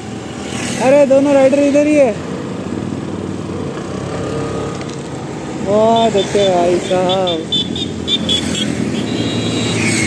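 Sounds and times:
passing road traffic: 0.0 - 10.0.

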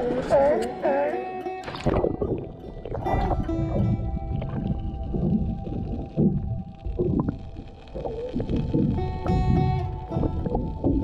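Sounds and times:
music with held tones: 0.0 - 11.0
muffled underwater rumbling: 1.6 - 11.0.

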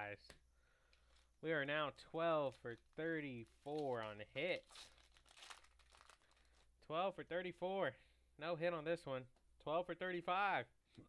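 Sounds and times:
foil wrapper crinkling and tearing: 2.3 - 6.8.

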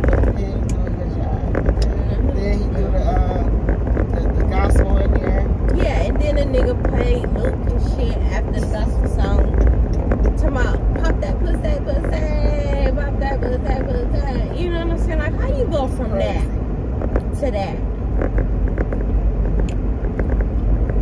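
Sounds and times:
car rumble inside cabin: 0.0 - 21.0.

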